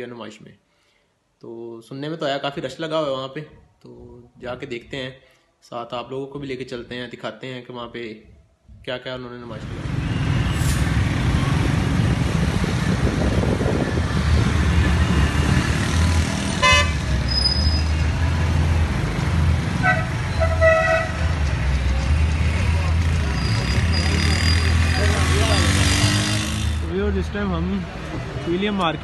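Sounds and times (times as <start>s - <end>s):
engine and road hum: 9.5s - 29.0s
car horns honking: 16.6s - 17.9s, 19.8s - 21.3s.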